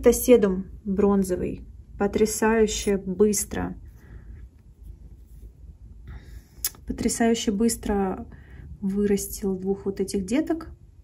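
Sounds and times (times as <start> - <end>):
faint handling noise: 2.7 - 7.2.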